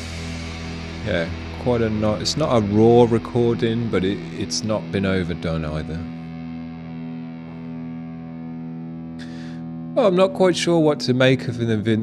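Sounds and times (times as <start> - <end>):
distorted electric guitar chord: 0.0 - 12.0.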